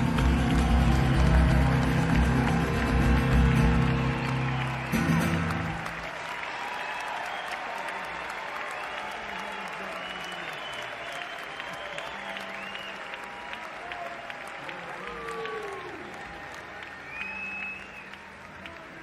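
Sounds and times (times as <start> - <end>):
audience applauding and cheering: 0.0 - 19.0
whistles: 7.1 - 7.7, 9.8 - 13.6, 17.0 - 18.2.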